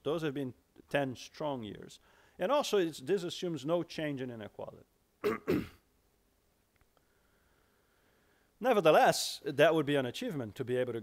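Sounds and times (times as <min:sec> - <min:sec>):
man coughing: 0:05.2 - 0:05.8.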